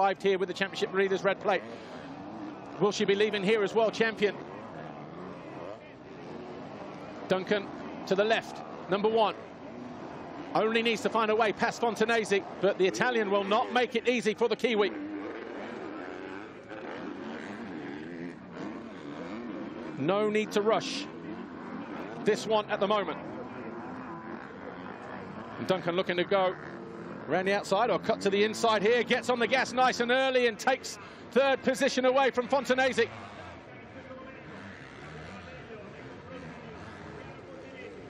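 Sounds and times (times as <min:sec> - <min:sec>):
motocross bike engines revving: 0:00.0 - 0:38.0.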